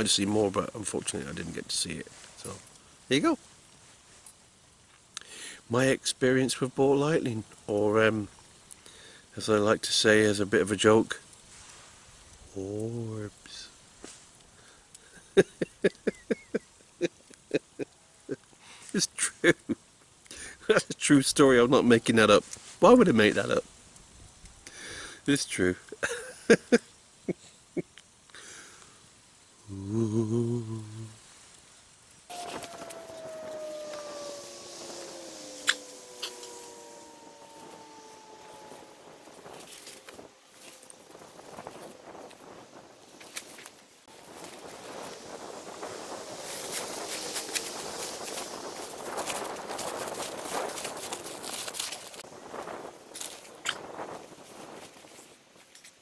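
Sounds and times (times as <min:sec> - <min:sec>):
slowly falling drone: 0:32.3 - 0:55.2
rustling in dry leaf litter: 0:32.3 - 0:56.0.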